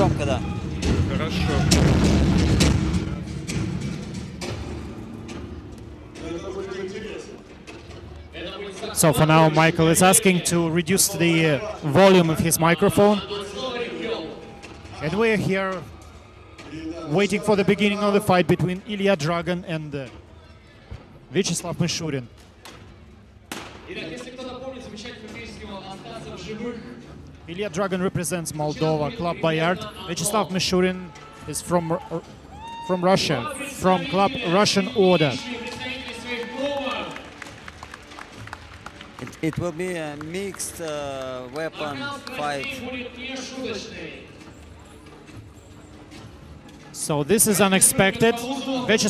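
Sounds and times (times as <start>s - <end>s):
heavy low booming: 0.0s - 5.5s.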